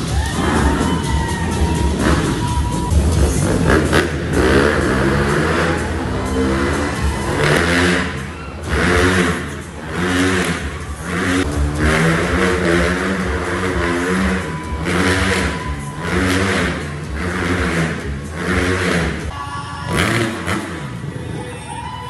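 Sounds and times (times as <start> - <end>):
motorcycle engine revving: 0.0 - 21.2.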